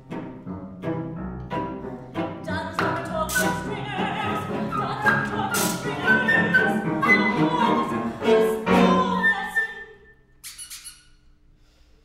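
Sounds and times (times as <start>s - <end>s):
squeaky toy squeaks: 10.4s - 11.2s.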